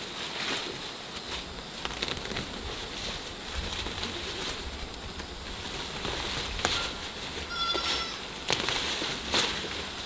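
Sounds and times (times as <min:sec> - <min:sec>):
leafy vines rustling: 0:00.0 - 0:10.0
sharp crackles: 0:00.0 - 0:10.0
stems snapping: 0:01.8 - 0:02.6, 0:08.4 - 0:09.8
short animal call: 0:06.7 - 0:08.3.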